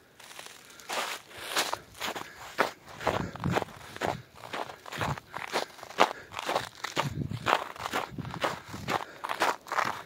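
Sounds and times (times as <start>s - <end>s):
footsteps crunching on snow: 0.1s - 10.0s.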